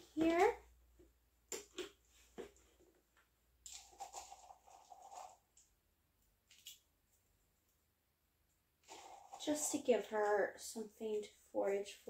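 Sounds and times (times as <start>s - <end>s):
dry treats pattering into plastic: 3.7s - 5.7s, 8.8s - 9.7s.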